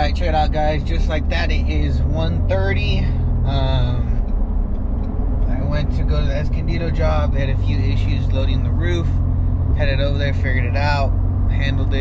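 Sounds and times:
man talking: 0.0s - 4.2s, 5.5s - 9.2s, 9.8s - 12.0s
road and engine rumble: 0.0s - 12.0s.

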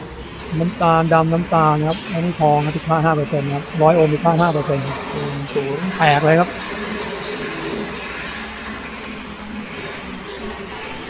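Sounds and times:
person speaking: 0.5s - 6.5s.

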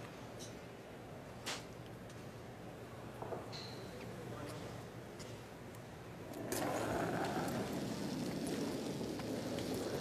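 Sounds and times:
curling stone rumbling over ice: 6.4s - 10.0s.

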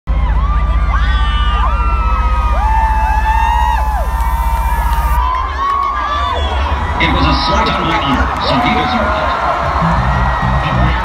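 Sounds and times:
deep pulsing bass note: 0.1s - 5.3s
crowd screaming and cheering: 0.1s - 11.0s.

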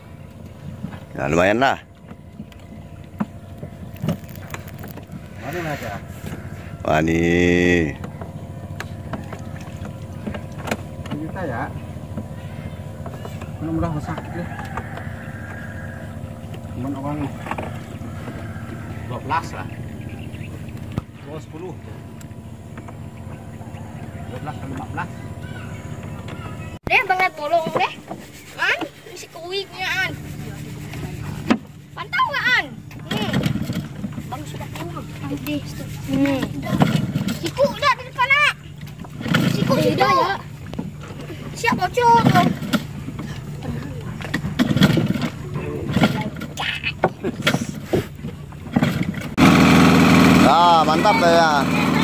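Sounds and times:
outboard motor idling: 0.0s - 52.0s.

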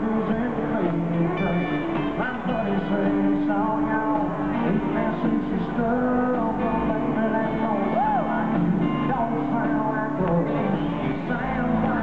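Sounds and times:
live country-rock band: 0.0s - 12.0s.

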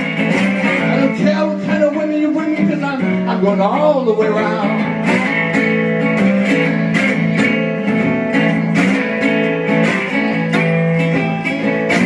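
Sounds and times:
acoustic guitar strumming blues: 0.0s - 12.0s.

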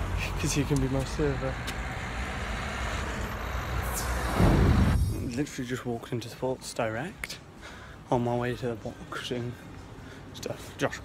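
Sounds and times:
road traffic rumble: 0.0s - 11.0s
low rumble: 4.0s - 5.5s.

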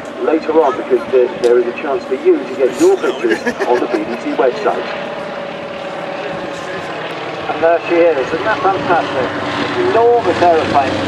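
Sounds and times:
propeller plane engine: 0.0s - 11.0s.

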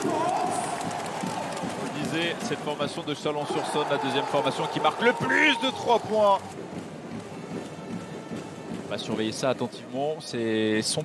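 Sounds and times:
crowd cheering: 0.0s - 9.7s.

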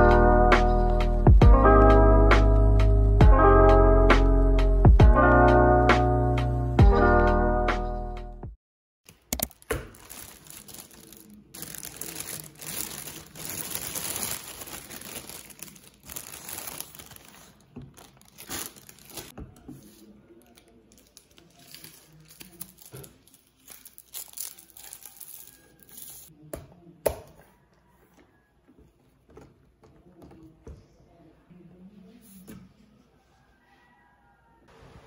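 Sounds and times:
plastic bag crinkling: 9.1s - 19.4s, 20.5s - 26.3s.

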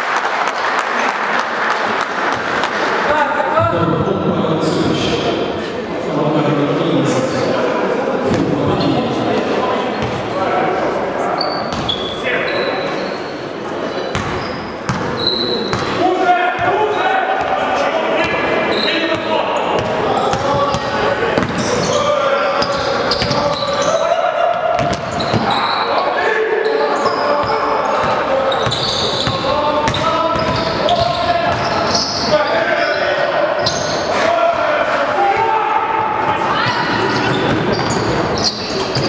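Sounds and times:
voices of players and spectators: 0.0s - 39.0s.

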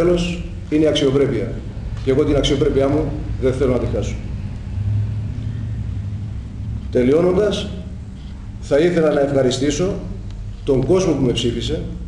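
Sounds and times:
man speaking: 0.0s - 4.3s, 6.9s - 8.0s, 8.6s - 12.0s
low steady rumble: 0.0s - 12.0s.

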